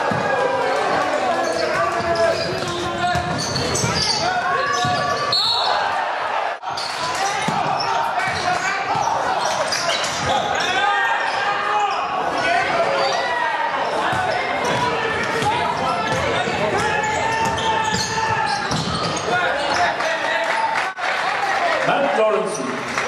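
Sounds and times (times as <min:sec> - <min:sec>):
echoing voices in hall: 0:00.0 - 0:23.0
basketball dribbling on court: 0:02.1 - 0:05.1.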